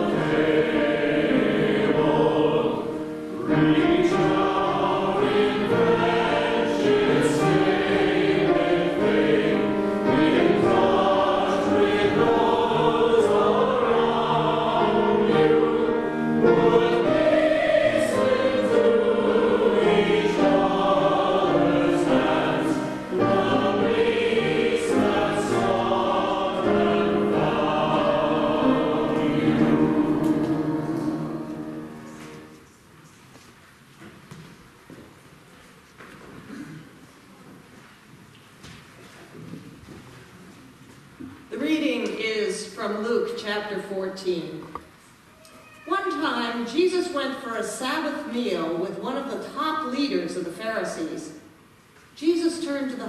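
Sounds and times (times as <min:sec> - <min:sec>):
church choir singing: 0:00.0 - 0:32.7.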